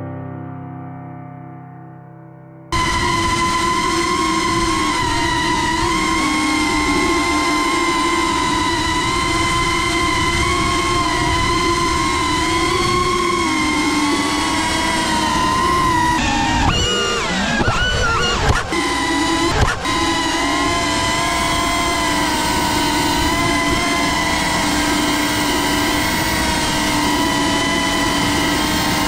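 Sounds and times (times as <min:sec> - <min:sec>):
quadcopter motors whining: 0:02.7 - 0:29.0.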